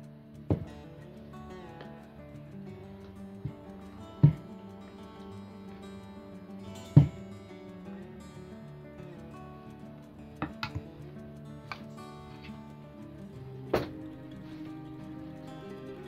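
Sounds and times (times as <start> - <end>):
acoustic guitar music: 0.0 - 16.0.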